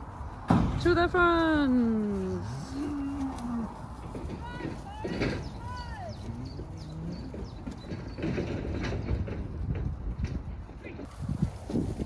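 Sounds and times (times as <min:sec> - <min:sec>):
hoof thuds and trampling on grass: 0:00.0 - 0:12.0
cattle calling: 0:05.1 - 0:08.2.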